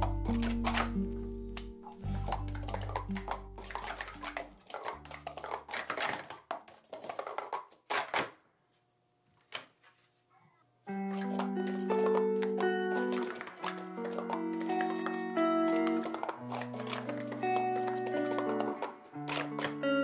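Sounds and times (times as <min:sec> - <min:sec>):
background music: 0:00.0 - 0:05.8, 0:10.9 - 0:20.0
plastic cups clacking: 0:00.0 - 0:08.4, 0:10.9 - 0:20.0.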